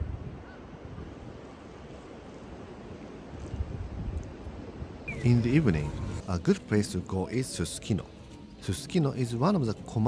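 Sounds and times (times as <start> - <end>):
wind on microphone: 0.0 - 2.1, 3.0 - 6.2.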